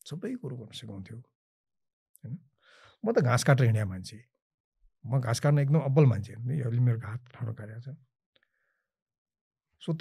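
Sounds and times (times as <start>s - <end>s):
man speaking: 0.0s - 1.3s, 5.0s - 8.0s.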